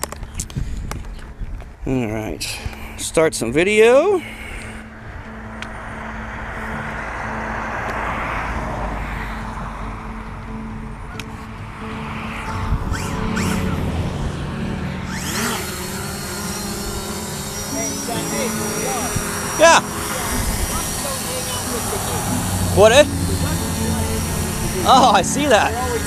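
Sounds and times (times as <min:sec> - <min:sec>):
drone propellers buzzing: 0:04.2 - 0:26.0.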